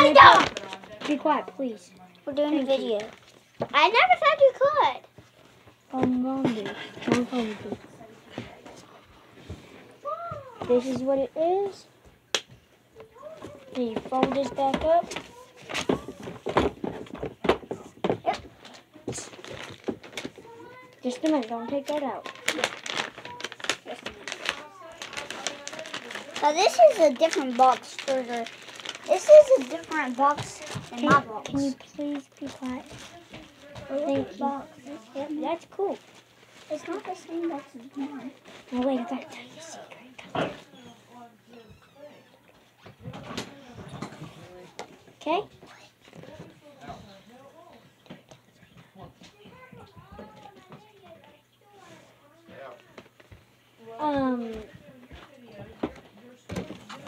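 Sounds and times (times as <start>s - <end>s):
paper and cardboard rustling: 0.0s - 1.6s, 6.0s - 9.9s, 13.2s - 39.8s
quiet talking: 12.8s - 57.0s.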